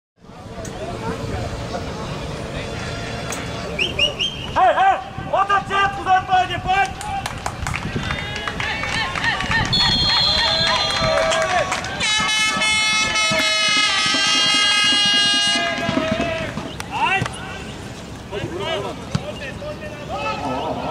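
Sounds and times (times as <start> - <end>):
high whistle: 3.8 - 4.6, 9.7 - 11.4
spectators shouting: 8.2 - 17.7
long horn blast: 12.0 - 16.2.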